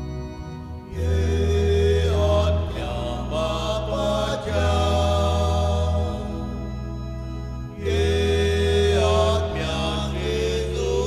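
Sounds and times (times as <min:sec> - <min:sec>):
hymn singing: 0:00.0 - 0:11.0
organ chords: 0:00.0 - 0:11.0.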